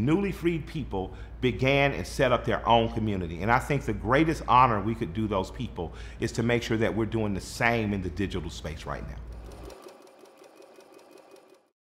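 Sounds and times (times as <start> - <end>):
banknote counting machine rattling: 9.3 - 11.7.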